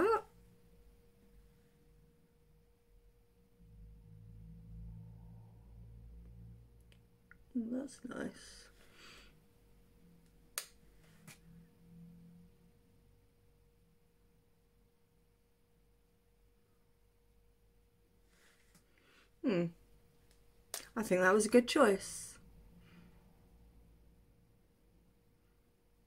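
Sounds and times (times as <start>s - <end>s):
faint steady hum: 0.0s - 26.0s
short pitched vocal sound: 19.4s - 19.8s.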